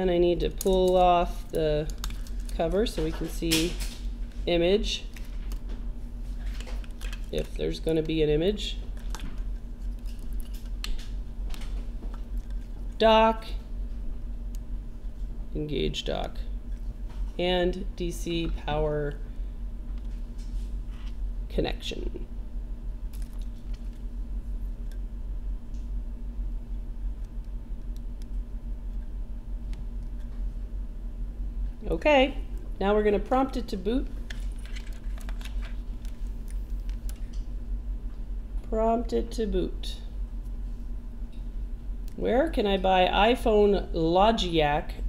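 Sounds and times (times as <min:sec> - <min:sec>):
electrical hum: 0:00.0 - 0:45.0
small parts clicking and snapping: 0:01.8 - 0:04.0, 0:06.5 - 0:08.1, 0:23.1 - 0:24.0.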